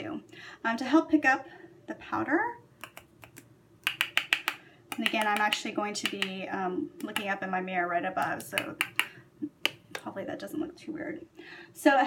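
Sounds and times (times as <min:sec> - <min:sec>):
makeup brush tapping a jar: 0:02.8 - 0:06.4, 0:08.2 - 0:10.1.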